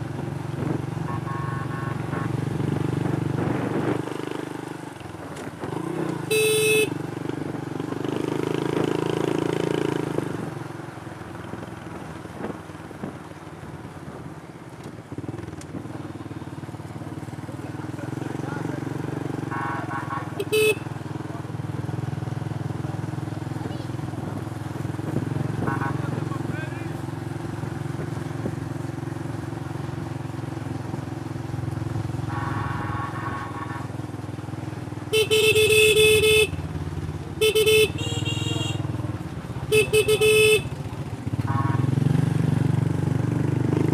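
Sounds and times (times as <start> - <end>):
motorbike engines running: 0.0 - 43.9
short horn toots: 6.3 - 6.9, 32.3 - 33.9.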